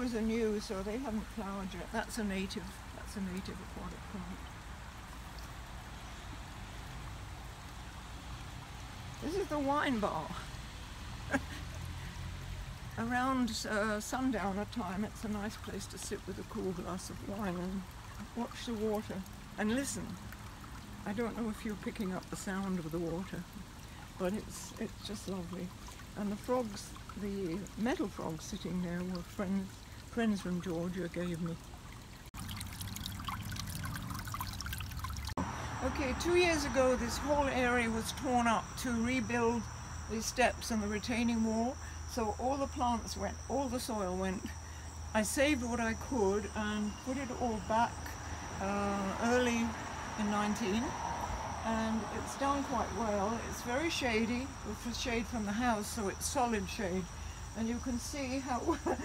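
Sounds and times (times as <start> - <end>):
running water at a pond: 0.0 - 59.0.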